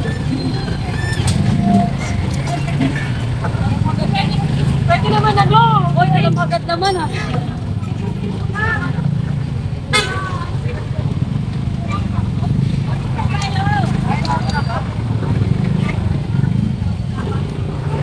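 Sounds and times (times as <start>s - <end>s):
people talking and calling out: 0.0s - 18.0s
rumble of vehicle engines: 0.0s - 18.0s.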